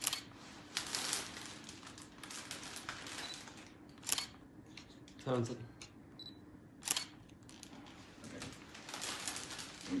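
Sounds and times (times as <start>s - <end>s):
camera shutters clicking: 4.0s - 4.4s, 6.8s - 7.4s.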